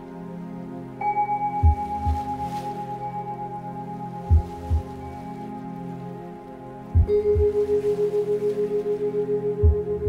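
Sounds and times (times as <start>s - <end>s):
low thumps: 4.2s - 5.2s, 6.9s - 7.8s.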